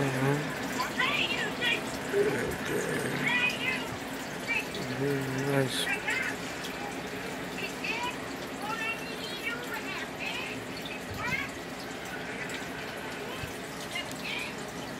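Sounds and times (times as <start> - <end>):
aquarium air bubbler bubbling: 0.0 - 14.9.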